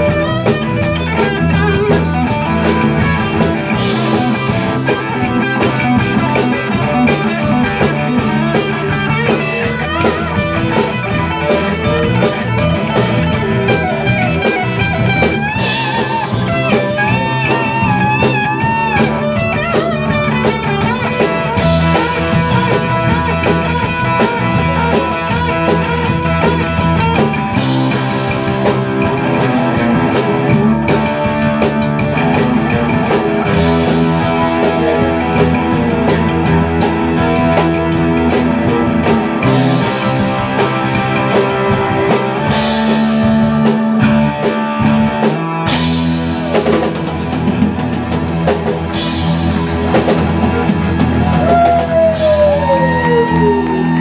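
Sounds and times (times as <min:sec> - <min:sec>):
lead guitar with bent notes: 0:00.0 - 0:54.0
live rock band playing: 0:00.0 - 0:54.0.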